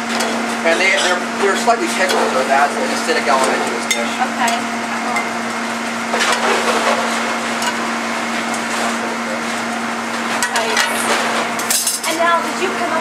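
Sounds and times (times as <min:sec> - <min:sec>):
ventilation and stoves humming: 0:00.0 - 0:13.0
metal tongs clinking on pan: 0:11.6 - 0:12.2.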